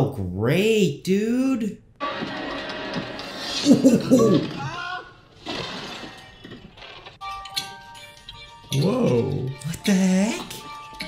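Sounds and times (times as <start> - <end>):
crash with shattering rattle: 2.0 - 7.2.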